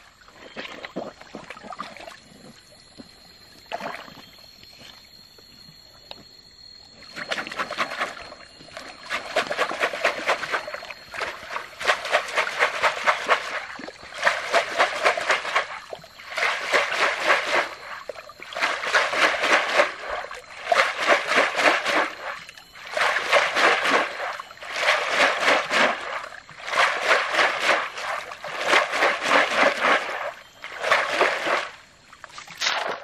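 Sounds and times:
gravel sieve splashing in water: 0:07.1 - 0:31.8.

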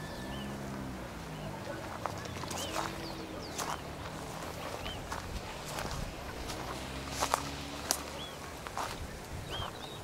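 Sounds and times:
footsteps on dry grass: 0:01.9 - 0:09.8.

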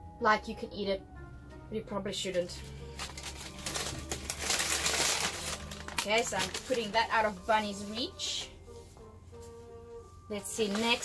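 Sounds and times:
paper and plastic bags crinkling: 0:02.7 - 0:07.8, 0:10.4 - 0:11.0.

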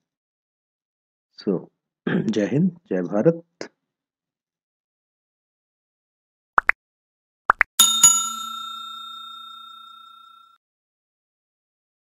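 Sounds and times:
bell chime ringing: 0:07.8 - 0:10.6.

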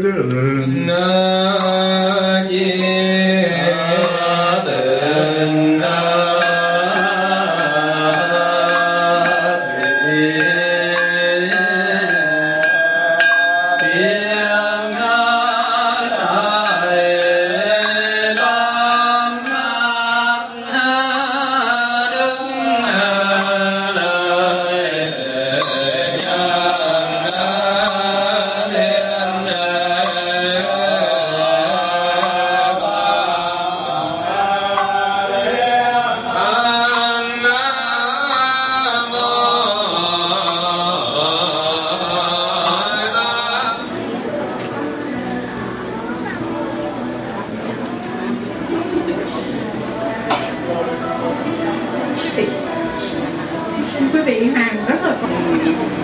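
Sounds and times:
monks chanting: 0:00.0 - 0:54.1
thin steady high tone: 0:01.3 - 0:54.6.

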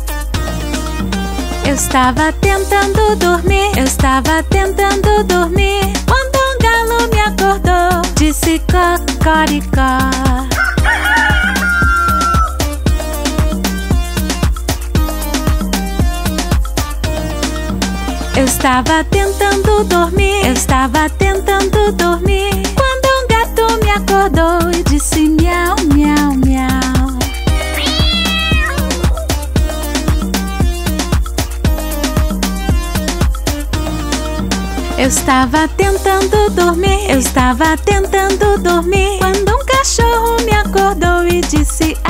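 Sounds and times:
children's song backing music: 0:00.0 - 0:42.0
rooster crowing: 0:10.5 - 0:12.8, 0:27.2 - 0:29.4
steady drum beat: 0:25.2 - 0:33.6
cat meowing: 0:27.1 - 0:29.4.

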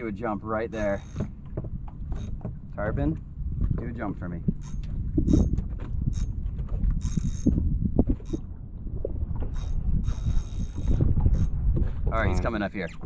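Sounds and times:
fishing reel gears whirring: 0:00.7 - 0:01.4, 0:04.6 - 0:06.4, 0:07.0 - 0:07.6, 0:09.4 - 0:11.6.

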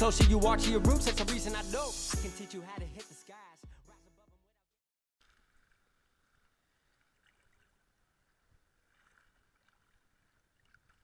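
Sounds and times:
water splashing and lapping: 0:05.2 - 0:11.0.

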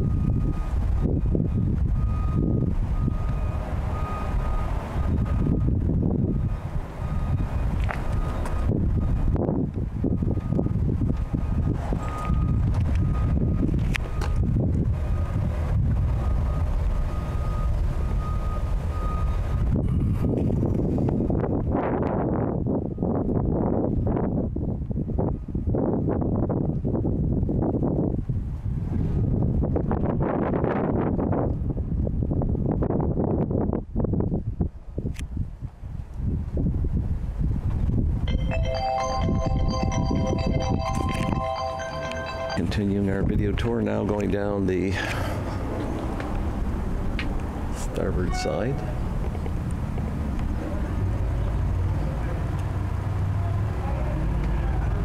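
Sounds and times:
wind buffeting microphone: 0:00.0 - 0:38.3
faint high tone: 0:38.3 - 0:43.0.

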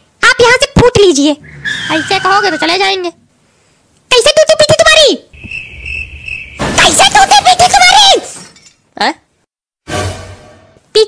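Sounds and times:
high-pitched shouting voice: 0:00.3 - 0:03.2
crickets chirping: 0:05.3 - 0:07.0.

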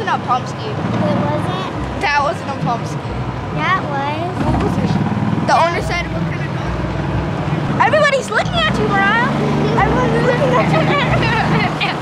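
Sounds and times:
vehicle motor running: 0:00.0 - 0:12.0.

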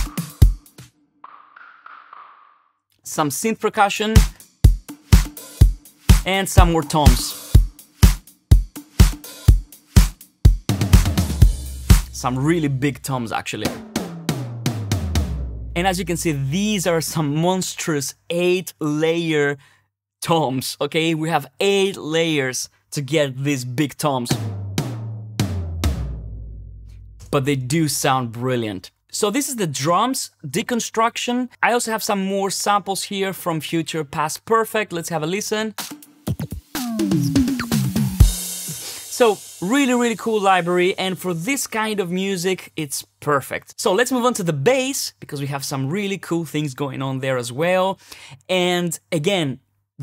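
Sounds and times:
tom drum hits with low boom: 0:10.5 - 0:12.4, 0:13.7 - 0:16.3, 0:24.3 - 0:27.4.

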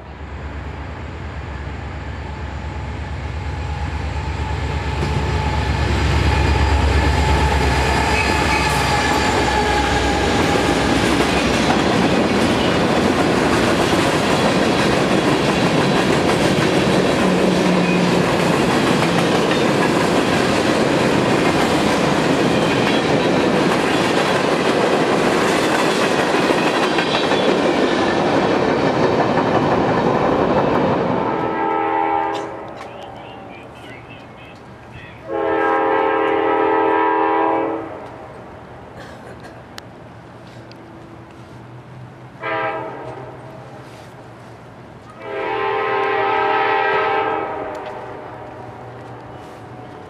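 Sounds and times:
freight train rolling past: 0:00.0 - 0:50.0
train horn blast: 0:31.2 - 0:32.7, 0:35.2 - 0:38.1, 0:42.4 - 0:43.5, 0:45.2 - 0:48.7.

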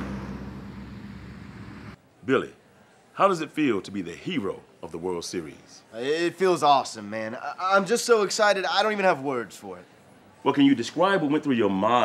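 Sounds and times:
low engine drone: 0:00.0 - 0:02.0
traffic hum: 0:00.0 - 0:02.2.

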